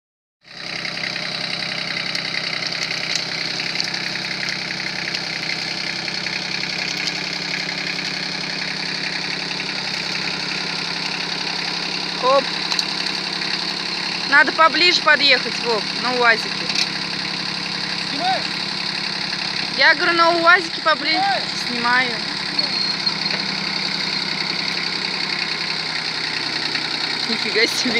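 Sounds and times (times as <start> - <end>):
tractor diesel engine running: 0.5 - 27.9.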